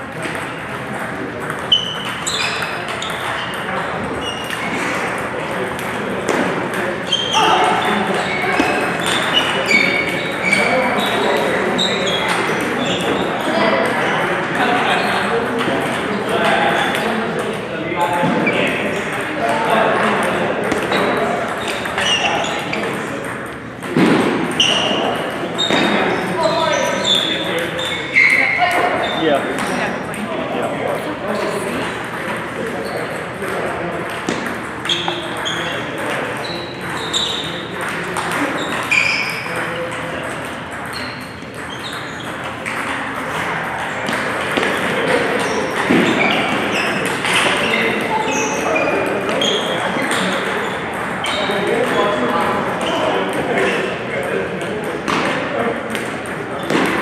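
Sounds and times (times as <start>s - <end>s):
voices talking: 0.0s - 57.0s
table tennis ball pinging: 0.1s - 29.8s, 32.0s - 57.0s.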